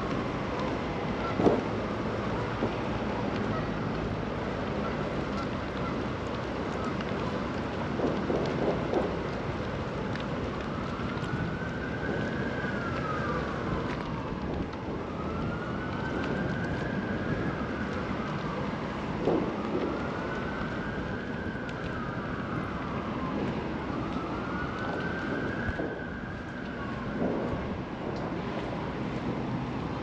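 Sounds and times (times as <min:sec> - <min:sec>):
emergency siren wailing: 0:00.0 - 0:30.0
steady traffic: 0:00.0 - 0:30.0
wind noise: 0:10.7 - 0:30.0.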